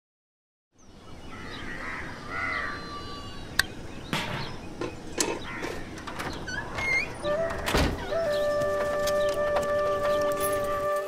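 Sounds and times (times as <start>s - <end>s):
evening outdoor ambience: 0.7s - 11.0s
birds calling: 0.8s - 11.0s.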